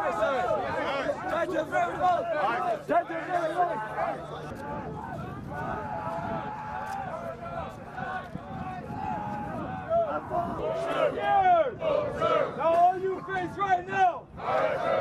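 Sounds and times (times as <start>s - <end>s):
man yelling loudly: 12.6s - 14.2s
group shouting: 14.4s - 15.0s.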